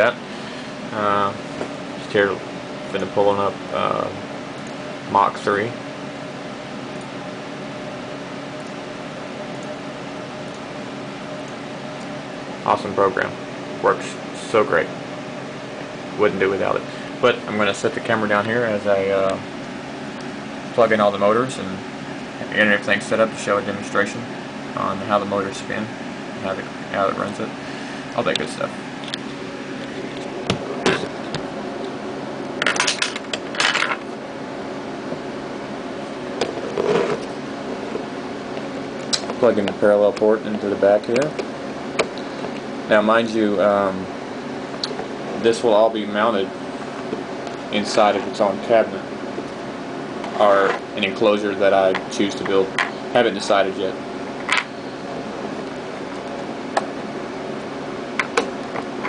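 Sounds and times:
fan-like hum: 0.0 - 59.0
rustling scrapes: 36.5 - 38.1.

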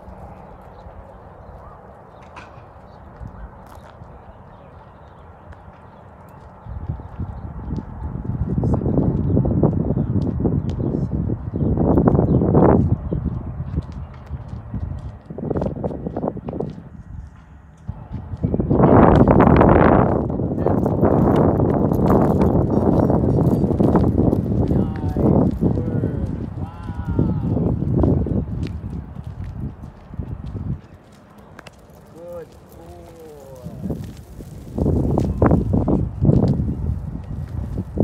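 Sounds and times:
footsteps on asphalt: 0.0 - 38.0.

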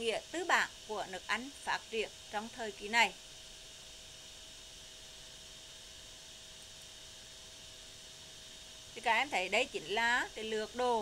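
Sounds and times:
faint steady hiss: 0.0 - 11.0
thin electrical hum: 0.0 - 11.0.

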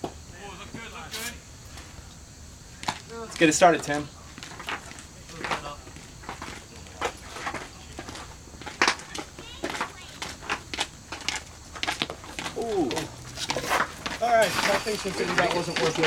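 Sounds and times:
indistinct voices: 0.3 - 16.0
person calling out: 12.6 - 13.1.

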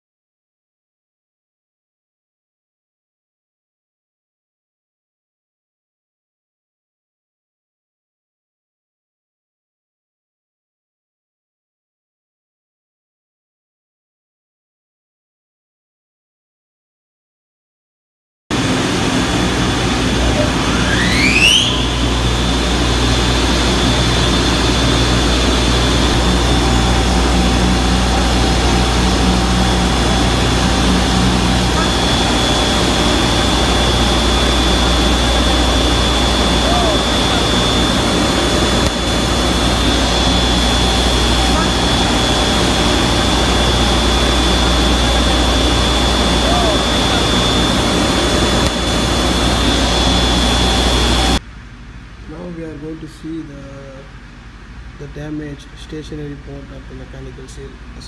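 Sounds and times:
high whine: 18.5 - 58.0
pump machinery running: 18.6 - 51.4.

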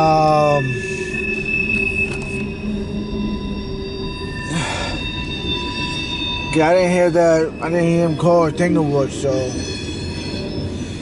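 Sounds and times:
train rumbling: 0.0 - 11.0
train wheels squealing: 0.0 - 11.0.

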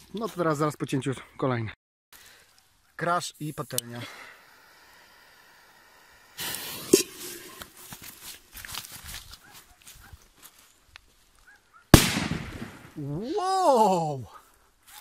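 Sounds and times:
firecracker bang: 12.0 - 13.0.

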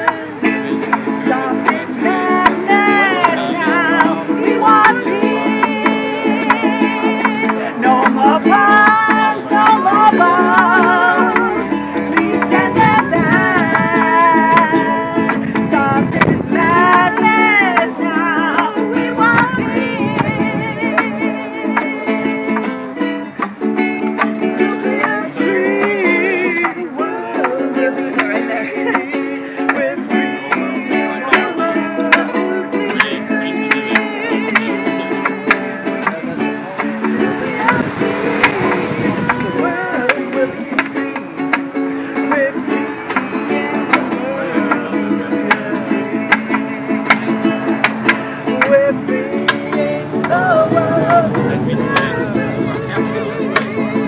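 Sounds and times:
ukulele strummed in chords: 0.0 - 54.0
woman singing: 0.0 - 54.0.

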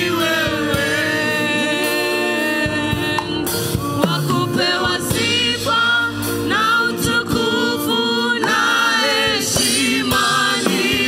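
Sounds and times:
group singing worship song: 0.0 - 11.0.

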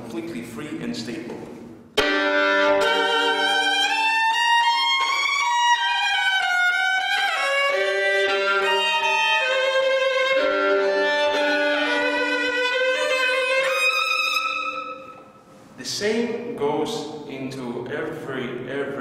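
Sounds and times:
solo violin playing slow notes: 2.0 - 15.4.

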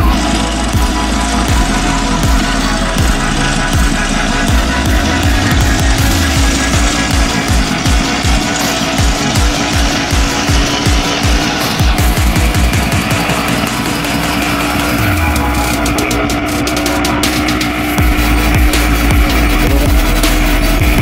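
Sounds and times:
loud rock music: 0.0 - 21.0
two-stroke engine rattling: 0.0 - 21.0.

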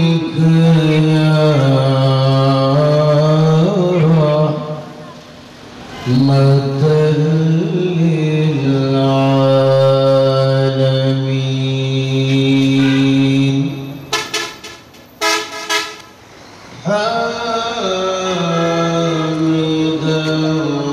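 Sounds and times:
man chanting: 0.0 - 5.2, 6.0 - 13.9, 16.8 - 20.9.

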